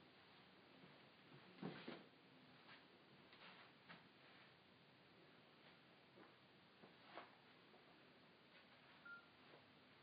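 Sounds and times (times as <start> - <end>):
phone keypad beep: 9.0 - 9.3.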